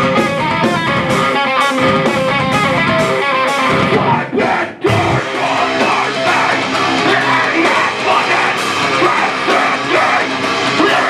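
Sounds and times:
electric guitar riff: 0.0s - 11.0s
live metal band playing: 0.0s - 11.0s.

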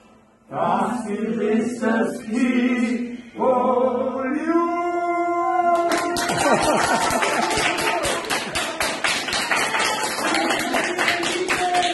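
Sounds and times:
group clapping: 5.7s - 11.9s.

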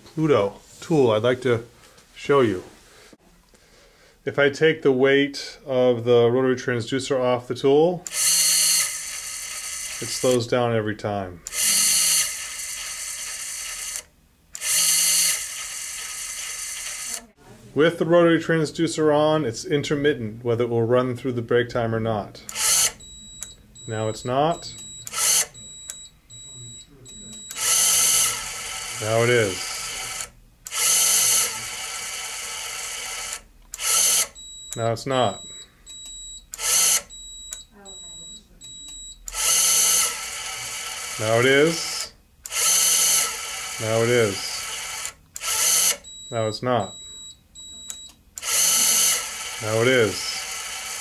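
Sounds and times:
electric screwdriver motor whirring: 8.1s - 10.4s, 11.5s - 17.2s, 22.5s - 23.0s, 25.1s - 25.5s, 27.4s - 34.4s, 36.5s - 37.1s, 39.3s - 41.8s, 42.5s - 46.0s, 48.4s - 51.0s.

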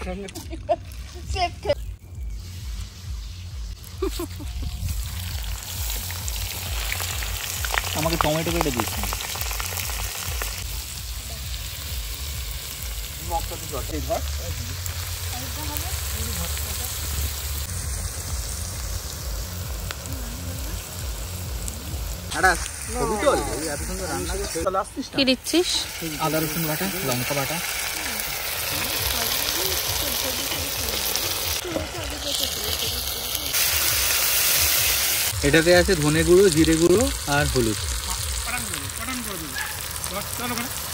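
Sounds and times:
masala frying in a pan: 0.0s - 40.9s
onions sizzling in oil: 0.8s - 40.9s.

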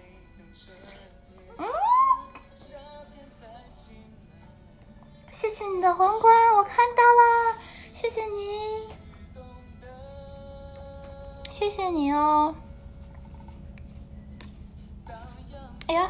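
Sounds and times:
high-pitched voice singing: 1.5s - 2.5s.

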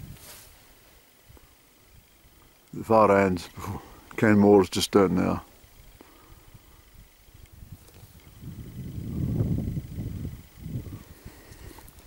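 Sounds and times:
wind rumbling on microphone: 0.0s - 2.4s, 5.6s - 12.0s.

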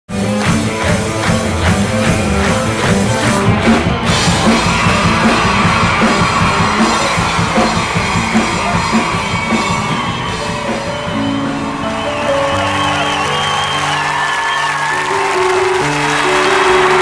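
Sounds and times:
rock song with drums: 0.1s - 13.6s.

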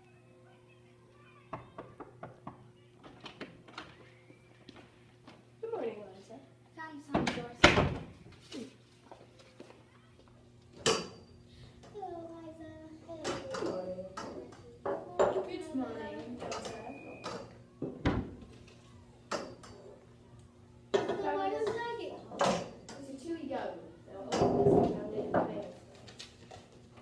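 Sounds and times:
cups knocking and clattering: 13.2s - 15.6s.

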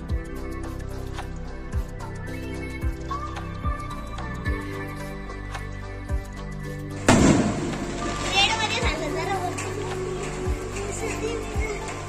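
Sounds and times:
loud procession music: 7.0s - 11.2s
firework bang: 7.1s - 8.3s.

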